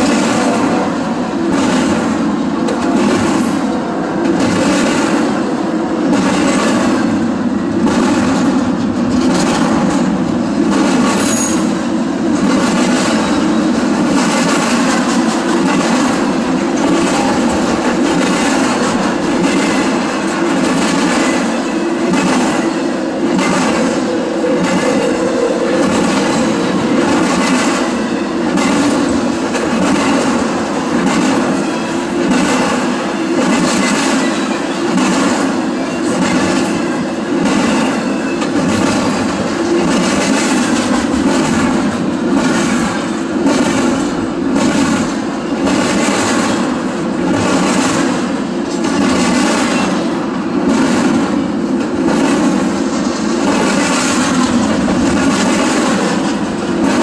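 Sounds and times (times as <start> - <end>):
train wheels rumbling on rail: 0.0 - 57.0
wheels clicking over track: 0.0 - 57.0.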